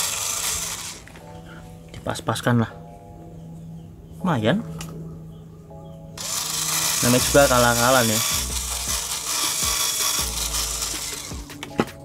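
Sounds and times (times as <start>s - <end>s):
cordless drill motor hum: 0.0s - 1.1s, 6.2s - 11.5s
drill bit cutting rubber hiss: 6.2s - 11.5s.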